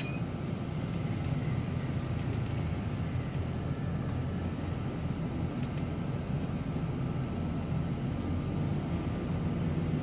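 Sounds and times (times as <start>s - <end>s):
bus engine and road noise: 0.0s - 10.0s.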